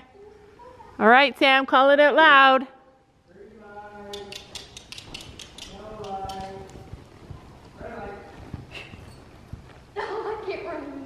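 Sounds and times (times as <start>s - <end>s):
light clicks: 4.1s - 6.9s.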